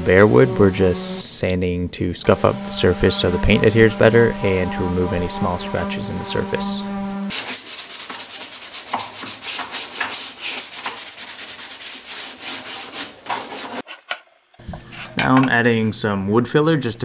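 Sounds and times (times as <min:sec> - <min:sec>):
sanding sponge scratching wood: 0:02.3 - 0:13.8.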